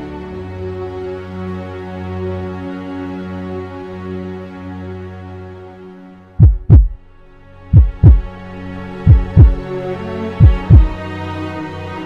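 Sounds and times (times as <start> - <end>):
heartbeat thumps: 6.4 - 7.0, 7.7 - 8.3, 9.1 - 9.6, 10.4 - 11.0.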